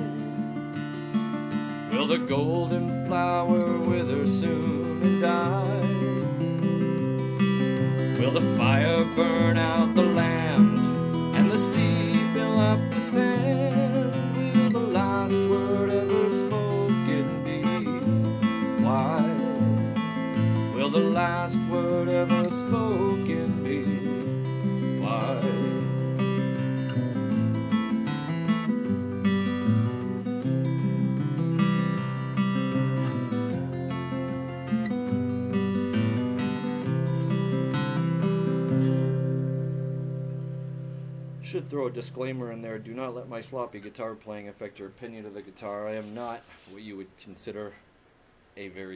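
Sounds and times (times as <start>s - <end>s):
acoustic guitar fingerpicking: 0.0s - 43.7s.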